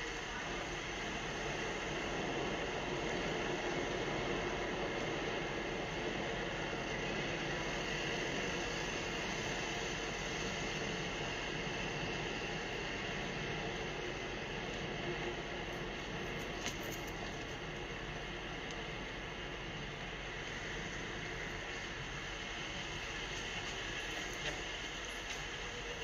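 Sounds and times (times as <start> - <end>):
city street traffic: 0.0 - 26.0.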